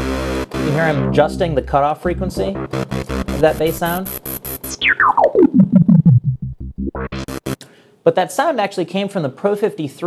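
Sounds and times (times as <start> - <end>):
distorted synth bass run: 0.0 - 7.6.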